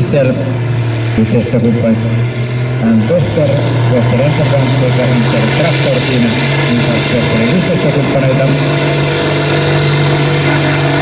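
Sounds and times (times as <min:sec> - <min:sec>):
diesel engine droning: 0:00.0 - 0:11.0
announcer speaking: 0:02.8 - 0:08.6.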